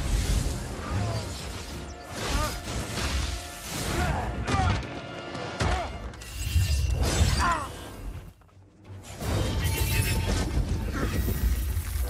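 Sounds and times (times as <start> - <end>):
film score music: 0.0 - 12.0.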